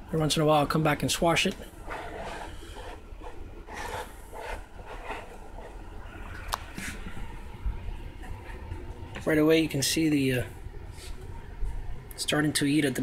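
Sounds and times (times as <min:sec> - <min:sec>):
low rumble of handling noise: 0:00.0 - 0:12.6.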